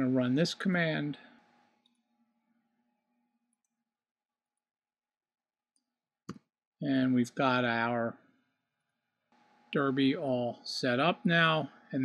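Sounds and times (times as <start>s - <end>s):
person speaking: 0.0s - 1.2s, 6.8s - 8.1s, 9.8s - 12.0s.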